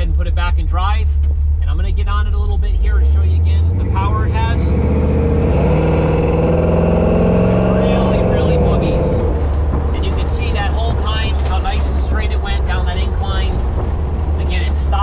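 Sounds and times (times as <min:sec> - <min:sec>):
engine accelerating: 0:00.0 - 0:15.0.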